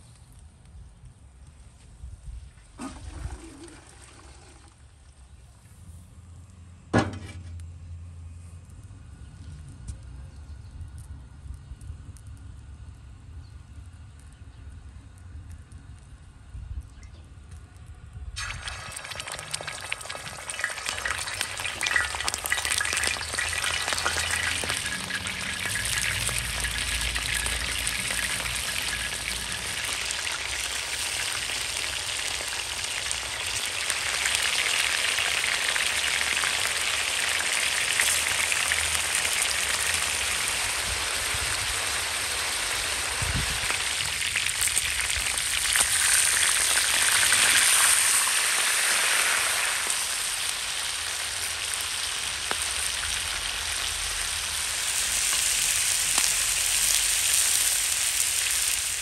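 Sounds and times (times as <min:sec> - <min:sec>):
metal skimmer stirring: 0:18.4 - 0:29.9
meat sizzling in hot oil: 0:18.4 - 0:59.0.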